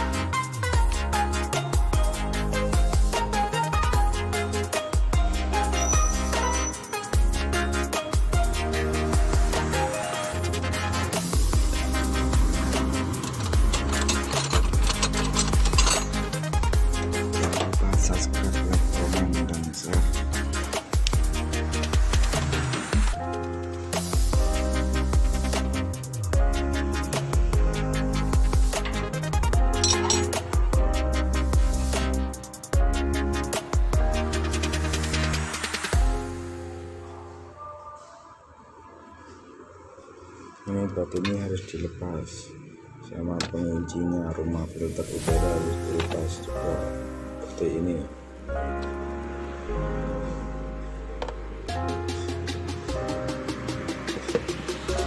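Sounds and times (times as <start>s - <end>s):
electronic music with heavy bass: 0.0s - 36.7s, 45.2s - 55.0s
man speaking: 17.4s - 20.2s, 40.7s - 48.1s.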